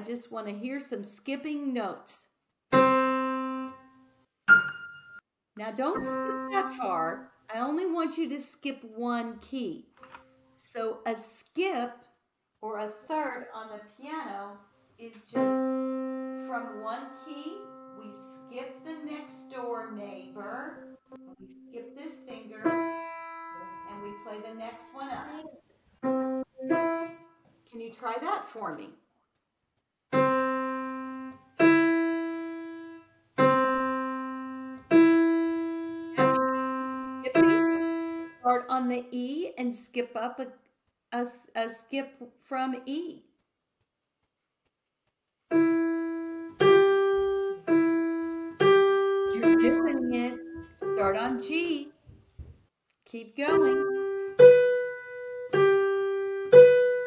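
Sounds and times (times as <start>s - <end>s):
digital piano single notes: 2.7s - 5.2s, 5.8s - 6.9s, 15.3s - 27.2s, 30.2s - 38.4s, 45.5s - 51.9s, 53.5s - 57.0s.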